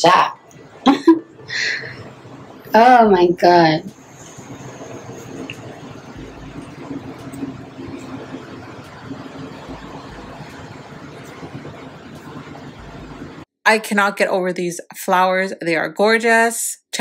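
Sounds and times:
brief low rumbles: 0:03.9 - 0:13.4.

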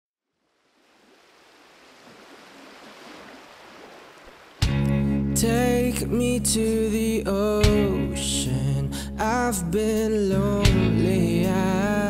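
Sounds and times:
sea waves washing ashore: 0:00.5 - 0:04.8.

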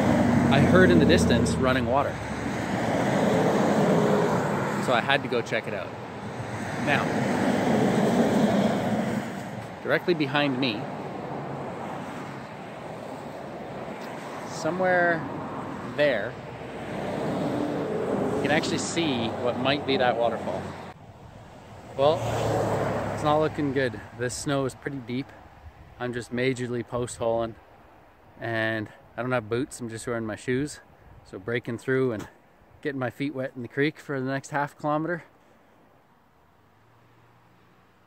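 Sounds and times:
vehicle passing on highway: 0:00.0 - 0:26.0, 0:36.6 - 0:38.0
car driving past: 0:06.2 - 0:09.8, 0:15.3 - 0:23.5.

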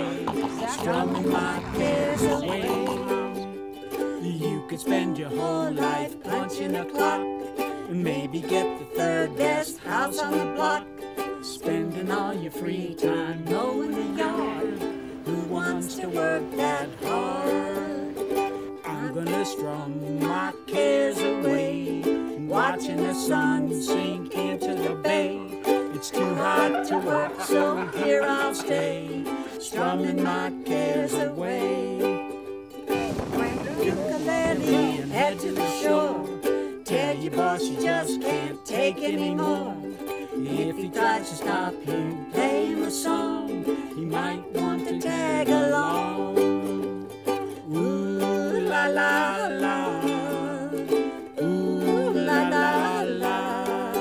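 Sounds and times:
ukulele strummed and picked: 0:00.0 - 0:54.0.

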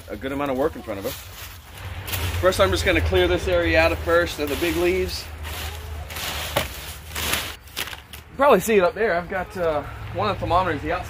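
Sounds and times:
rake scraping dry leaves: 0:00.0 - 0:08.2.

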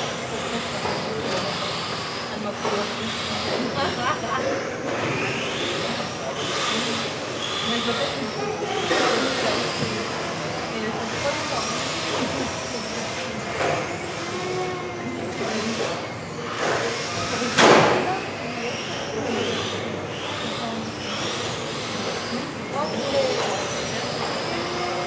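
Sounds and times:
loud sharp noisy burst: 0:00.0 - 0:25.0
rc car motors whining: 0:00.0 - 0:25.0.

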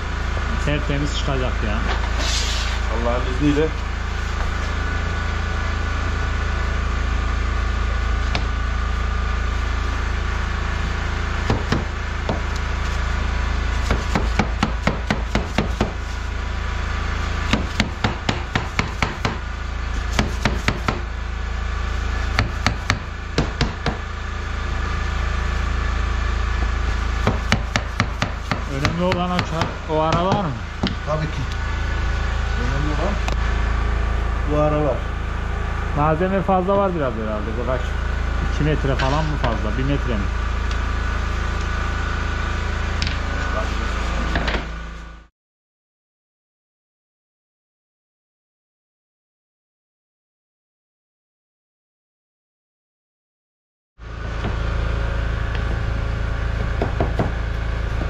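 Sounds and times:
steady low hum: 0:00.0 - 0:45.3, 0:54.0 - 0:58.0.

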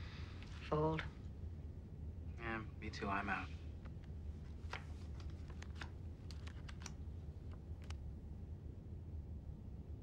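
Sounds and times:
steady low hum: 0:00.0 - 0:06.2.

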